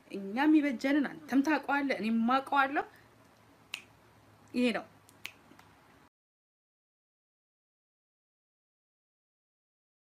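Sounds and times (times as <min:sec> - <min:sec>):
faint room hiss: 0:00.0 - 0:06.1.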